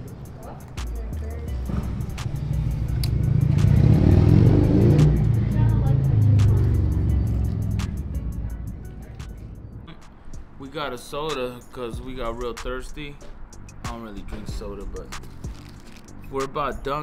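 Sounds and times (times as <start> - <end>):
loud vehicle engine passing: 0.0 - 10.6
background music with steady beat: 0.0 - 17.0.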